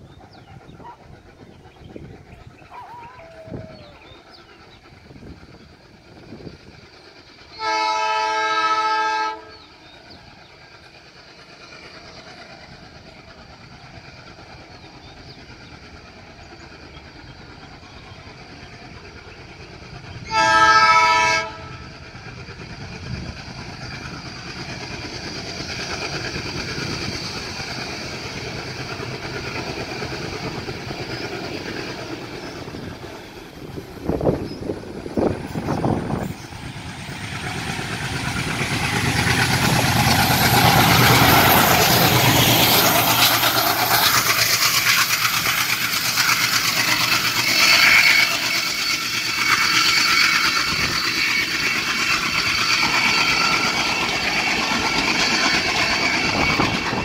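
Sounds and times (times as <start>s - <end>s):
locomotive engine rumble: 0.0s - 57.0s
train on rails: 0.0s - 57.0s
locomotive horn blasts: 7.6s - 9.5s, 20.3s - 21.8s.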